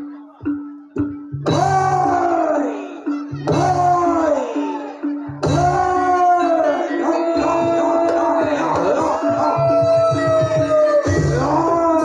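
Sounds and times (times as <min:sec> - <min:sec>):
gamelan high melody notes: 0:00.0 - 0:12.0
low gamelan beats: 0:00.0 - 0:12.0.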